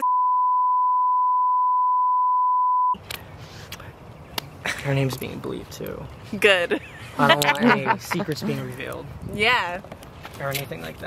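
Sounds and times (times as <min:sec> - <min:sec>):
censor bleep: 0:00.0 - 0:03.0
person speaking: 0:07.2 - 0:09.1.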